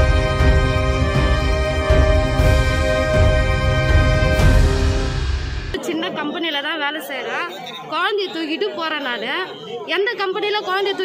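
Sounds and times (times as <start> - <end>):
crowd chattering: 2.8 - 11.0
woman talking: 5.8 - 11.0.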